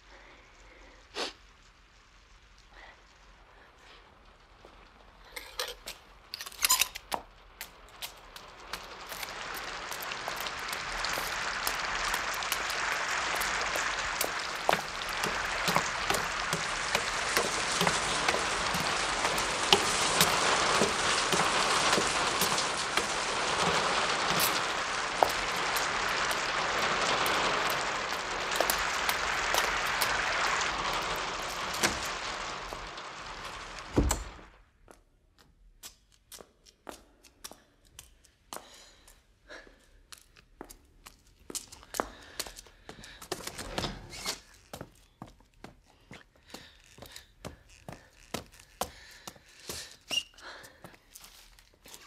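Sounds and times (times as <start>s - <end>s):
heavy rain with sharp ticks: 0.0s - 34.6s, 35.9s - 52.0s.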